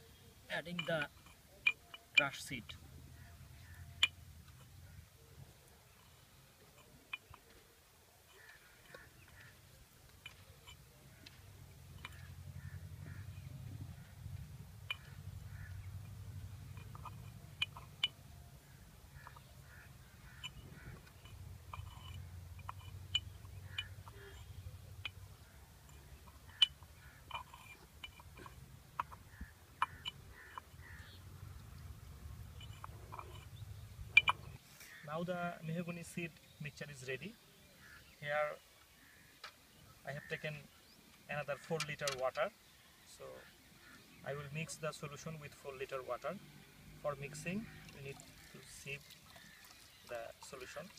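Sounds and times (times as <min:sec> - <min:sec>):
stick scraping pot: 0:08.3 - 0:35.0
stick knocking against clay pot: 0:14.8 - 0:31.2.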